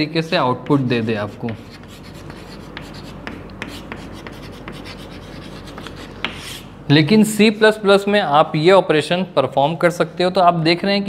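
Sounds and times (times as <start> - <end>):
chalk scratching on blackboard: 0.6 - 6.7.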